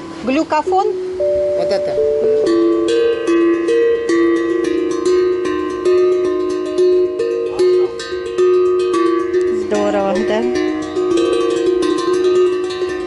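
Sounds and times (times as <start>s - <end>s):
steel tongue drum melody: 0.0s - 13.0s.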